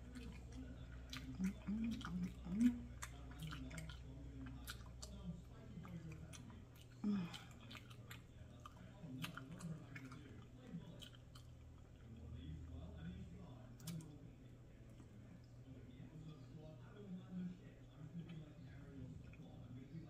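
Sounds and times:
person chewing: 0.0s - 12.2s.

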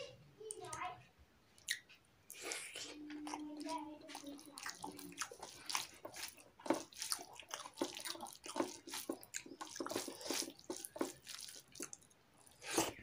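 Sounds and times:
fingers squelching rice on metal plate: 4.1s - 12.1s.

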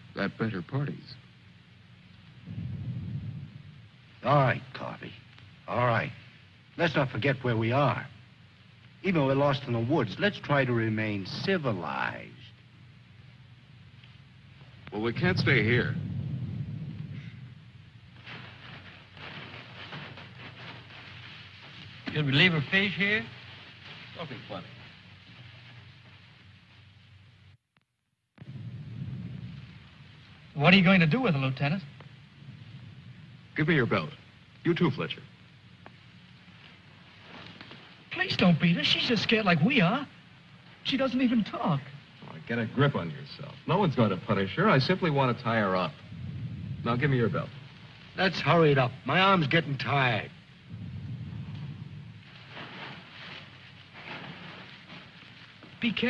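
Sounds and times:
film soundtrack hiss and hum: 0.0s - 56.0s
clothing rustling in a scuffle: 18.2s - 26.3s, 52.2s - 56.0s.

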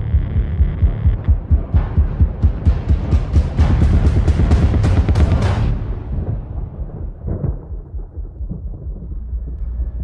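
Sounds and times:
low uneven pulsing: 0.0s - 10.0s
deep thunder-like rumble: 0.6s - 10.0s.

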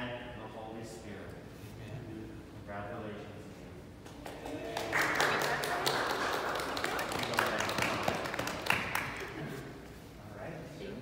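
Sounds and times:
people clapping: 4.0s - 9.6s.

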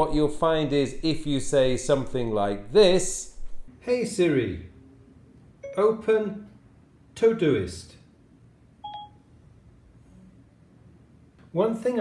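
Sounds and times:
short two-tone electronic beep: 5.6s - 6.0s, 8.8s - 9.2s.

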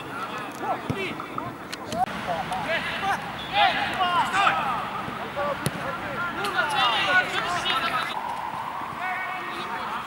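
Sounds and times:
crowd noise: 0.0s - 10.0s
players shouting: 2.3s - 10.0s.

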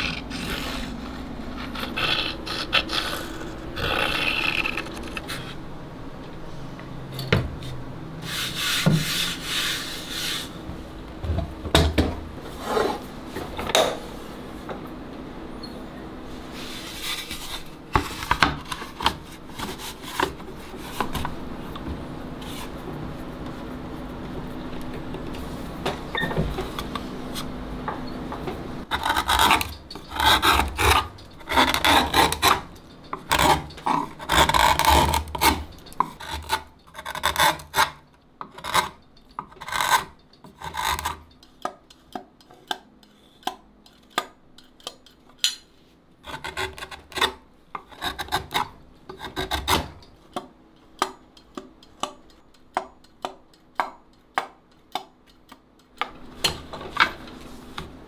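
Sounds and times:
gouge scraping wood: 0.0s - 5.6s, 7.6s - 10.5s, 28.9s - 38.0s, 38.6s - 41.2s, 46.2s - 50.0s.

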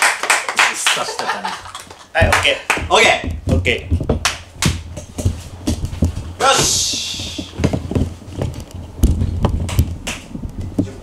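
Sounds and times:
sharp hand claps: 0.0s - 3.0s, 4.2s - 4.8s.

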